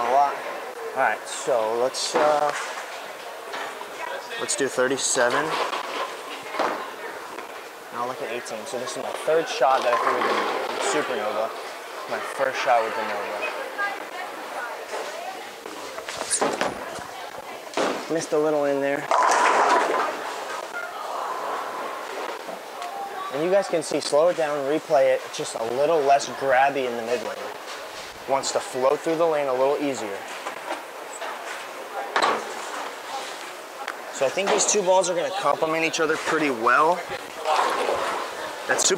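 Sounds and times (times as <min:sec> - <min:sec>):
bowling alley room noise: 0:00.0 - 0:38.9
faint voices: 0:00.0 - 0:38.9.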